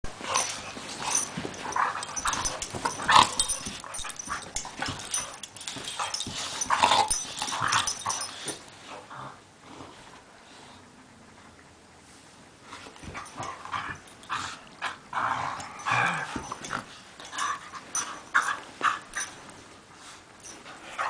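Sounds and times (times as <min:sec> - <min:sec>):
dogs play-fighting: 0:00.0 - 0:10.3, 0:12.6 - 0:21.0.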